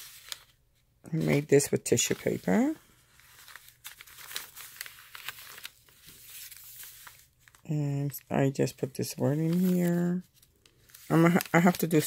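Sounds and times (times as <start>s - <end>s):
paper rustling and crinkling: 0.0s - 8.3s, 9.1s - 12.0s.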